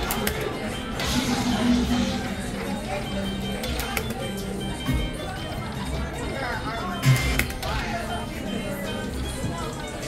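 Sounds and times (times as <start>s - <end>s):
slot machine bonus music: 0.0s - 10.0s.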